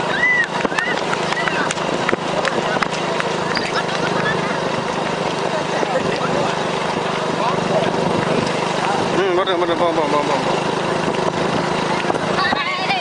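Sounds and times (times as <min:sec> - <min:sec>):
footsteps on asphalt: 0:00.0 - 0:13.0
motorbike engine humming: 0:00.0 - 0:13.0
voices: 0:00.0 - 0:13.0
high chirping calls: 0:02.6 - 0:04.8.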